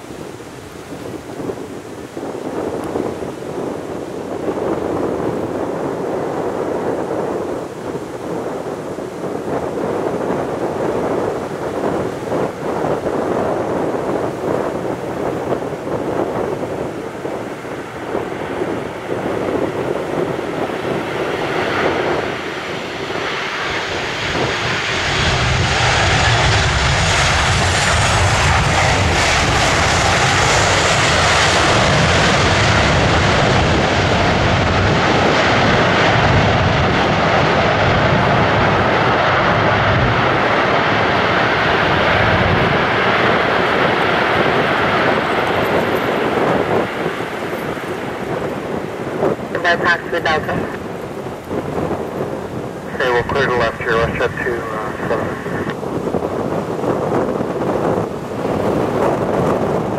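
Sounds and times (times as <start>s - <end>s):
jet engines whining: 9.7s - 59.9s.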